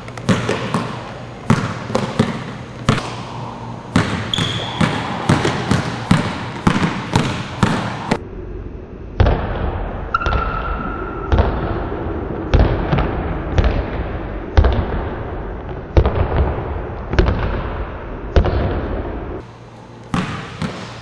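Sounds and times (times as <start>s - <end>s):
basketball bouncing on wooden floor: 0.1s - 3.3s, 3.9s - 8.2s, 20.1s - 21.0s.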